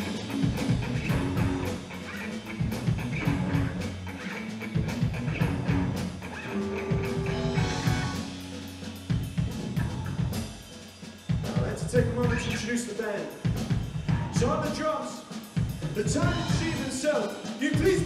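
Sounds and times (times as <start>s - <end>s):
bass guitar: 0.0s - 10.8s, 11.4s - 12.7s, 13.6s - 14.8s, 15.7s - 16.9s
electric guitars: 0.0s - 11.1s
drum kit beat: 0.0s - 18.0s.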